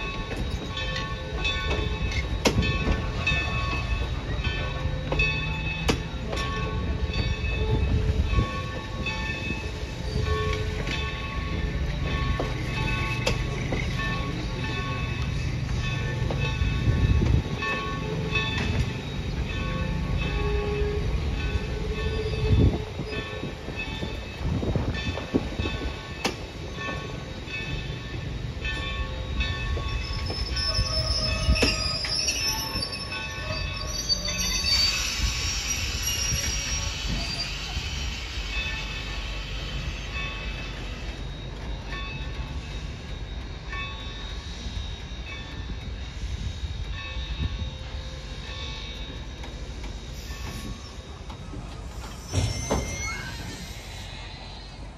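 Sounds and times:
train coaches rumbling past: 0.0s - 54.9s
hissing squeal: 29.9s - 41.3s, 48.2s - 54.9s
wheel squeals: 29.9s - 41.8s, 48.7s - 54.8s.

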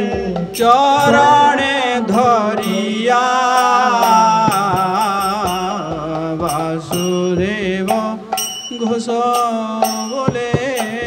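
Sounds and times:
hand drum strokes: 0.0s - 11.0s
man singing devotional melody: 0.0s - 11.0s.

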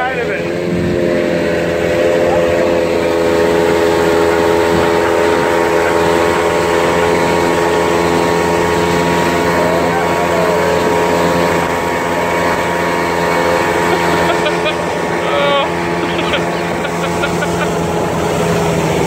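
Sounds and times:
outboard motor running: 0.0s - 19.0s
water rushing: 0.0s - 19.0s.

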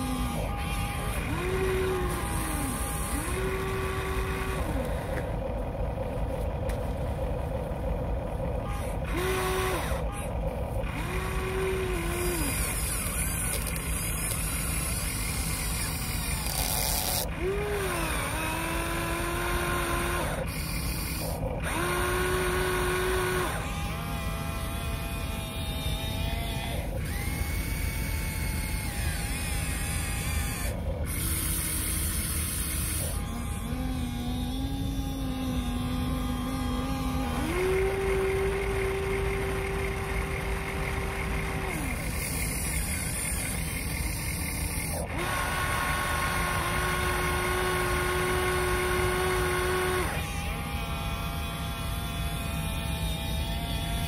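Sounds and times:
small electric motors whining: 0.0s - 54.0s.

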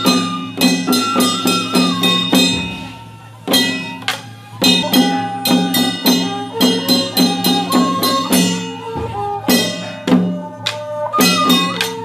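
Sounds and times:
drums beating: 0.0s - 12.0s
small gongs ringing: 0.0s - 12.0s.

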